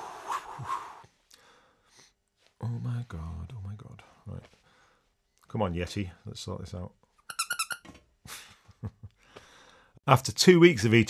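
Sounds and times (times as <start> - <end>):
plush toy squeaking: 7.2 - 7.9
breathy exhale: 9.2 - 10.0.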